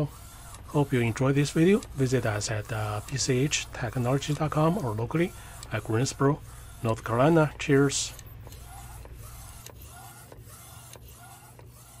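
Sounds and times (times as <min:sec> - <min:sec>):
printer carriage moving: 0:00.0 - 0:12.0.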